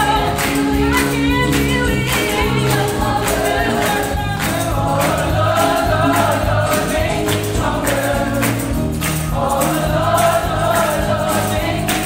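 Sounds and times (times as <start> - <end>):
gospel choir singing: 0.0 - 12.0
instrumental accompaniment with beat: 0.0 - 12.0.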